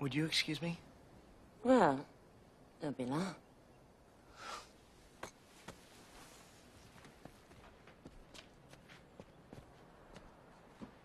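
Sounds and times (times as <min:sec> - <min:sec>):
faint soft footsteps: 0:05.3 - 0:11.0.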